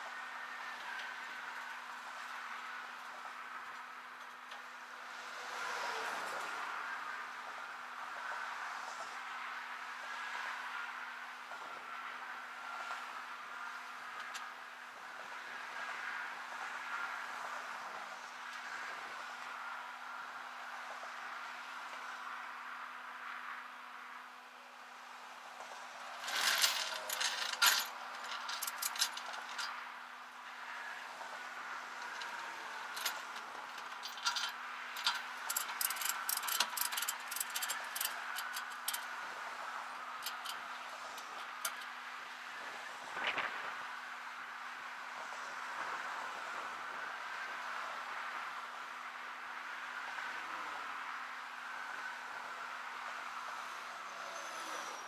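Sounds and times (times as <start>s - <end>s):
highway traffic: 0.0s - 55.0s
light metallic clinking: 26.2s - 29.8s, 32.0s - 39.0s.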